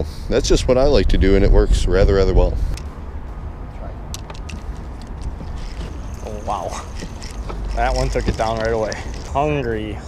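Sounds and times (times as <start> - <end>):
wind rumble on microphone: 0.0 - 3.2.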